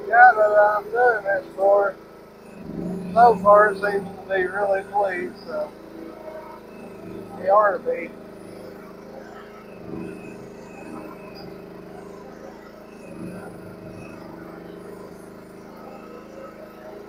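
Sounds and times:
small gasoline engine running: 0:00.0 - 0:17.0.

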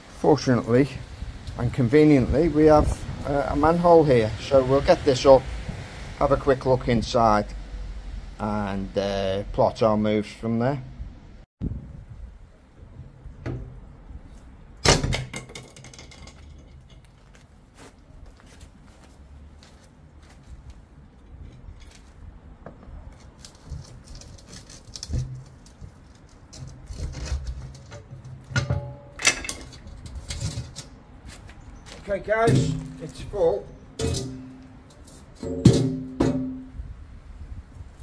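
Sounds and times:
heavy metal clanks: 0:27.7 - 0:30.9, 0:32.4 - 0:36.8
metal manhole cover clinks: 0:27.7 - 0:30.9, 0:32.4 - 0:36.8.

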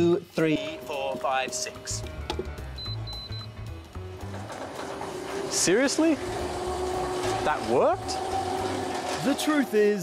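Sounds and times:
background music with bass line: 0:01.8 - 0:04.8
high electronic keypad beeps: 0:02.7 - 0:03.5.

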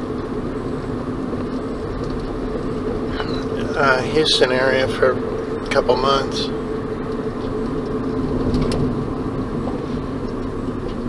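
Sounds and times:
road noise: 0:00.0 - 0:11.0
van engine drone: 0:00.0 - 0:11.0.

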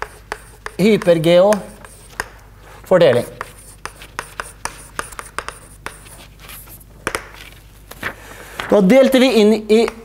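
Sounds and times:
chalk tapping and scraping: 0:00.0 - 0:07.6.

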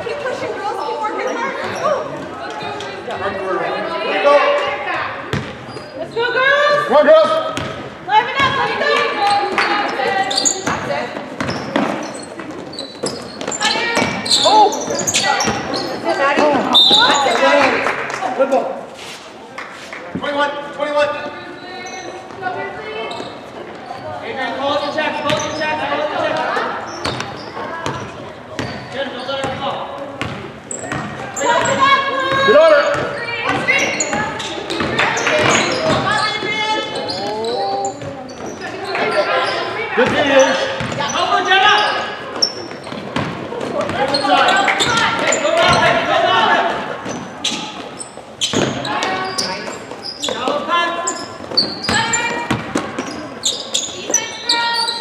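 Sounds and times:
players and spectators calling out: 0:00.0 - 0:18.9, 0:20.2 - 0:55.0
basketball bouncing on hardwood floor: 0:05.3 - 0:05.6, 0:43.2 - 0:44.0.

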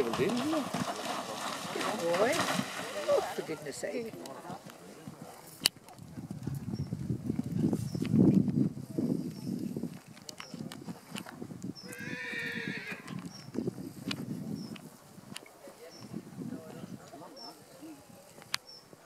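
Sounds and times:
horse hoofbeats cantering: 0:00.0 - 0:06.7.

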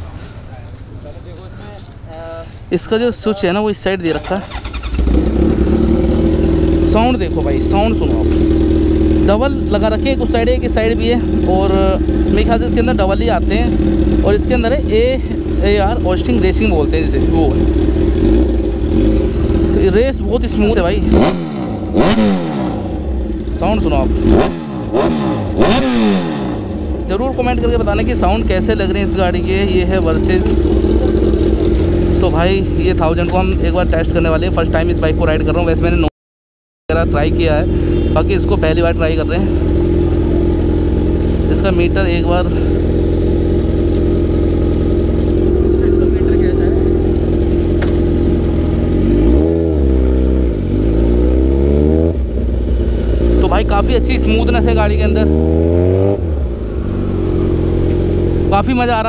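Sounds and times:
motorcycle engine revving: 0:04.0 - 0:36.1, 0:36.9 - 0:59.0.

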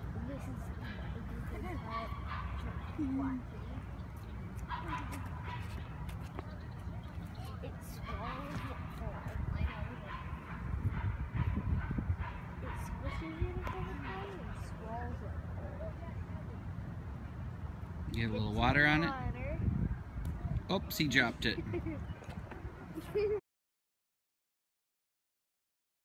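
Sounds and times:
wind buffeting microphone: 0:00.0 - 0:23.4.

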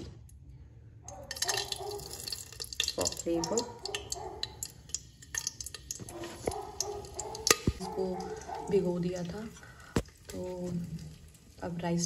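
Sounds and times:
metal spoon scraping a steel pot: 0:01.3 - 0:08.8.

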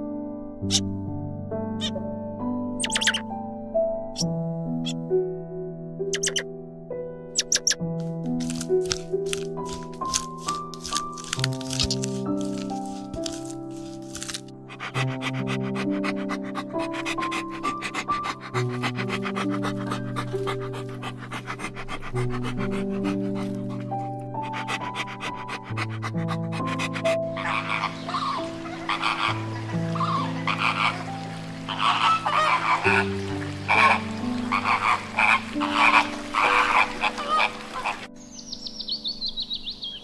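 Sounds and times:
soft piano music: 0:00.0 - 0:40.0
guineafowl call: 0:02.8 - 0:03.2, 0:06.2 - 0:06.4, 0:07.4 - 0:07.8, 0:27.4 - 0:38.1
puppies panting: 0:07.5 - 0:07.7, 0:08.4 - 0:38.1
flamingos honking: 0:27.4 - 0:38.1.

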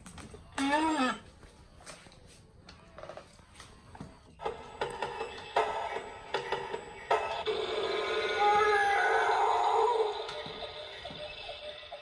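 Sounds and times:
toy electronic music and effects: 0:04.6 - 0:12.0.

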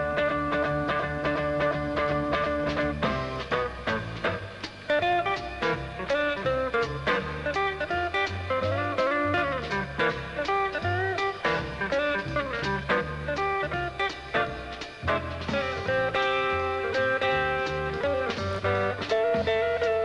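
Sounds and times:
electric guitar single-note lines: 0:00.0 - 0:20.0
jazz trio playing: 0:00.0 - 0:20.0.

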